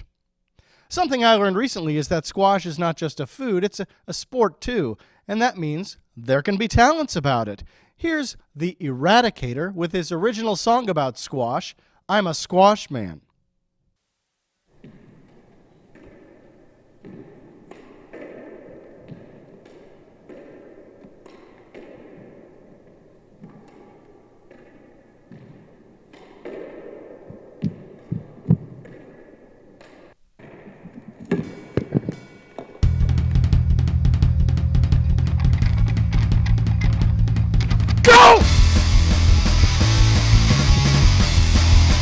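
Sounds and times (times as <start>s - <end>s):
distorted electric guitar chords: 32.8s - 42.0s.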